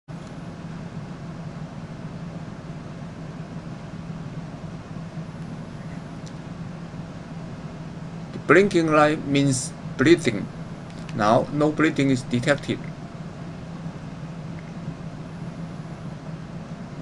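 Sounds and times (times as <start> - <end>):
steady low hum with hiss: 0.1 - 17.0.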